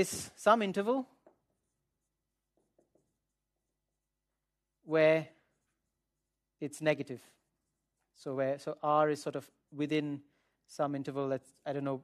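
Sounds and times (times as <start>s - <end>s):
marker writing on whiteboard: 0.0s - 8.3s.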